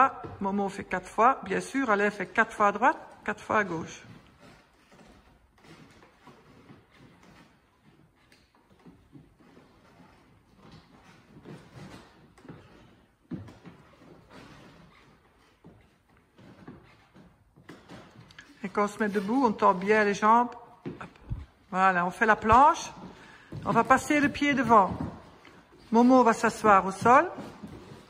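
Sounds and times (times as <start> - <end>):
trainers thudding on wooden floor: 17.6 - 28.0.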